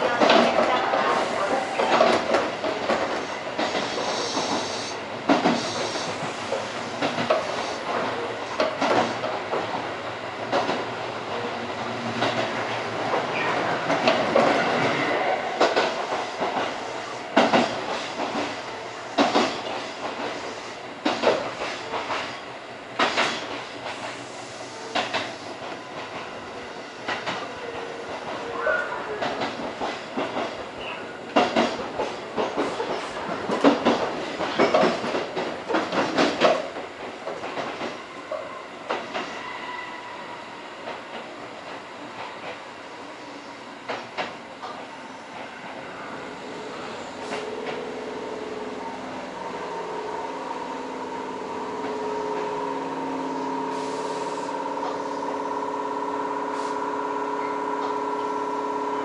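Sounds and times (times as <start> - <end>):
electric train running rumble: 0.0 - 59.0
wheels clicking over rail joints: 5.3 - 18.6, 29.2 - 39.3.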